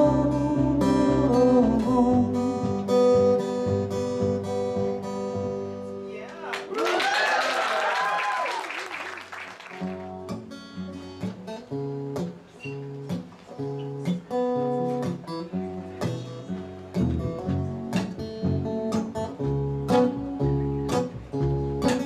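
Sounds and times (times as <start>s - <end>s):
double bass low notes: 0.0s - 5.8s, 14.6s - 22.0s
acoustic guitar plucked and strummed: 0.0s - 6.2s, 9.8s - 22.0s.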